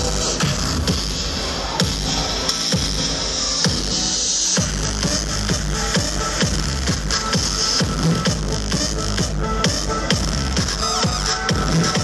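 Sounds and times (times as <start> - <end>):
electronic dance music: 0.0 - 12.0
steady kick drum: 0.0 - 12.0.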